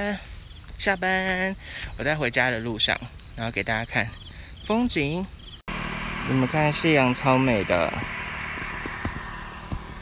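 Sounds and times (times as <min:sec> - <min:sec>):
low rumble: 0:05.7 - 0:10.0.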